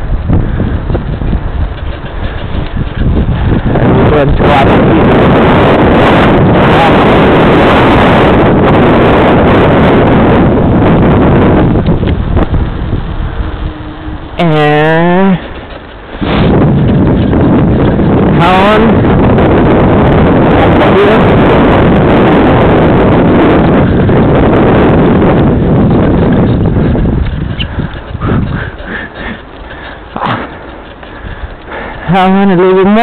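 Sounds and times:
rumbling ride on paved path: 0.0s - 33.0s
wind buffeting microphone: 0.0s - 33.0s.

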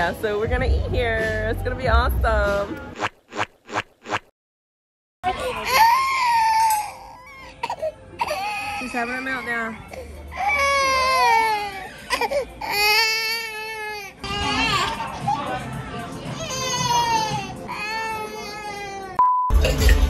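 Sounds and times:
toddler crying: 5.3s - 15.2s, 16.3s - 19.2s.

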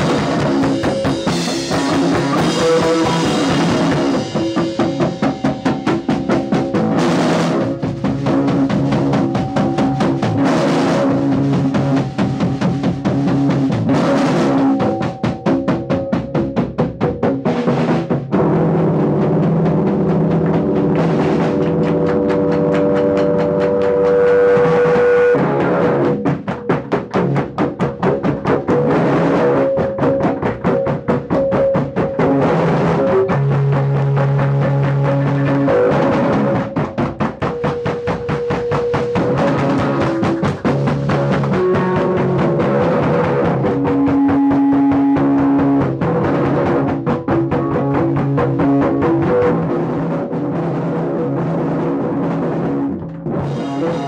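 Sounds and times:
electric bass: 0.0s - 54.0s
fast driving drums: 0.0s - 54.0s.

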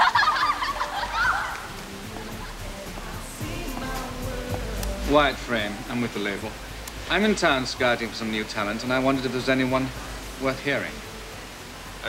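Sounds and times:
girls laughing: 0.0s - 2.8s
quiet background music: 0.0s - 12.0s.

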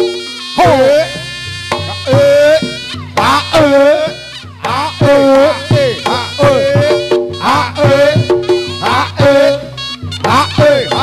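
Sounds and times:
buzzy double-reed shawm melody: 0.0s - 11.0s
sharp percussion strokes: 0.0s - 11.0s.

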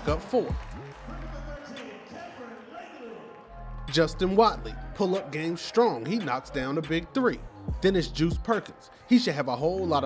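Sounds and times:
background music with bass: 0.0s - 2.0s, 3.5s - 10.0s.

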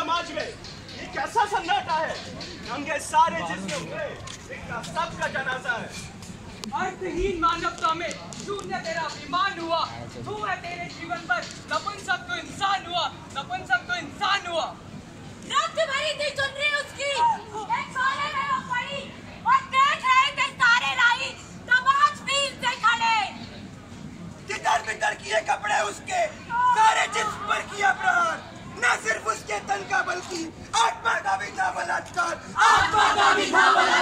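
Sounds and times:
group of voices shouting: 32.6s - 34.0s.

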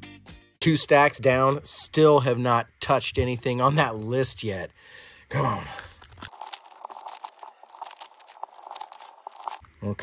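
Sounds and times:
wrapper tearing and crinkling: 5.6s - 9.6s.

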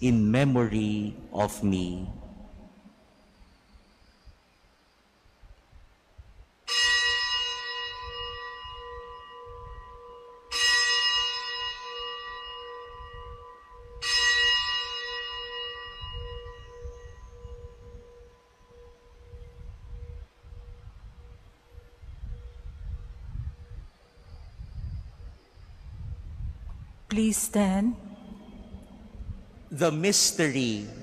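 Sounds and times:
altar bell ringing: 6.7s - 20.4s.

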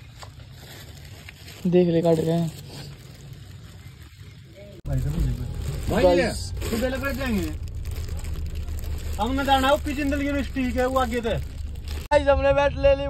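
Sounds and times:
steady low rumble: 4.8s - 13.0s.

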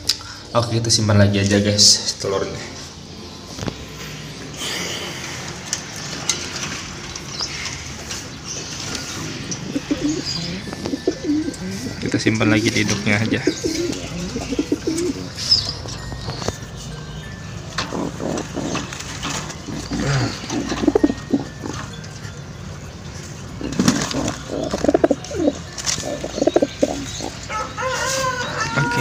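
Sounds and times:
pigeons cooing: 7.1s - 22.5s, 23.2s - 29.0s.

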